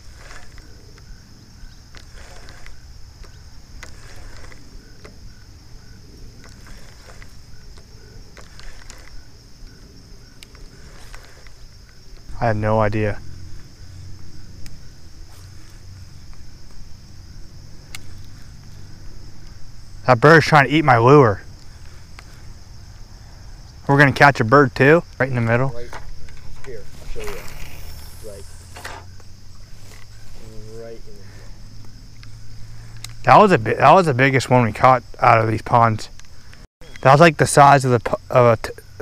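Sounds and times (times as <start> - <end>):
high-pitched insect chorus: 0.0 - 39.0
person speaking: 26.6 - 28.7.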